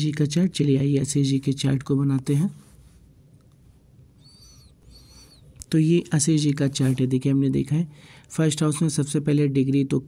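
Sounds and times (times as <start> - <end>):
low room hum: 0.0 - 10.0
bird calls: 4.2 - 5.6.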